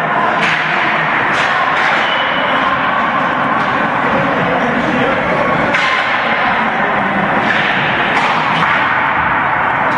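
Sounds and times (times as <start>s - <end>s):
ice rink noise: 0.0s - 9.9s
hockey sticks and pucks knocking: 0.2s - 9.9s.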